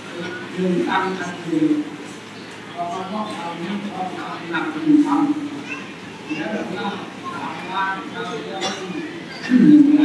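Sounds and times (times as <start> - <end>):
man preaching into a microphone: 0.0 - 2.0, 2.8 - 5.5.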